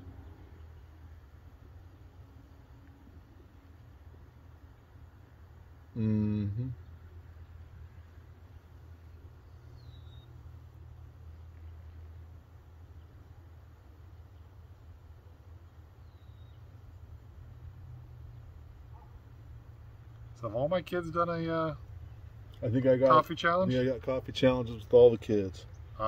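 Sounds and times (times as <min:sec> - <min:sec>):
low hum: 0:00.0 - 0:26.0
high bird chirps: 0:09.4 - 0:10.4, 0:16.0 - 0:16.7.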